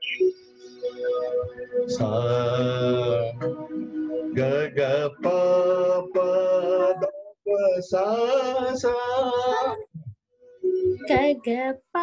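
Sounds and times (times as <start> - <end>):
man singing held note: 4.4 - 9.8.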